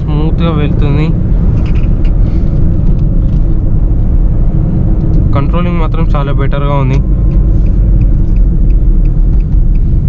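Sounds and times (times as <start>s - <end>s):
diesel engine and road rumble: 0.0s - 10.0s.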